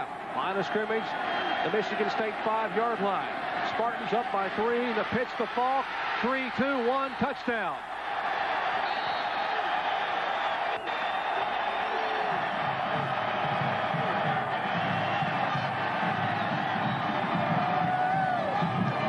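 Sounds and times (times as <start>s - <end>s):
stadium crowd cheering: 0.0s - 19.0s.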